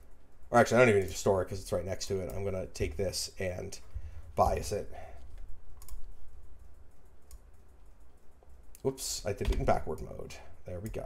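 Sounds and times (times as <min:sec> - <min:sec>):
low steady hum: 0:00.0 - 0:11.0
person speaking: 0:00.5 - 0:06.2, 0:08.7 - 0:11.0
computer mouse and keyboard clicks: 0:02.0 - 0:11.0.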